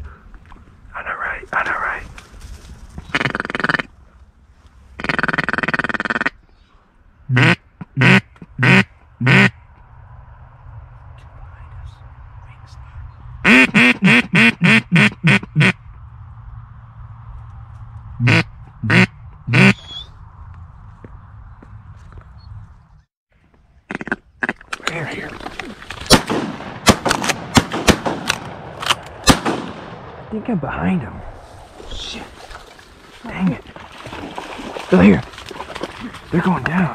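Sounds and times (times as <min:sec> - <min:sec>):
duck call quacks: 0:05.0 - 0:06.4, 0:07.3 - 0:09.5, 0:13.4 - 0:15.8, 0:18.2 - 0:20.0
shotgun shots: 0:26.0 - 0:30.3
scuffling through reeds: 0:31.2 - 0:36.9.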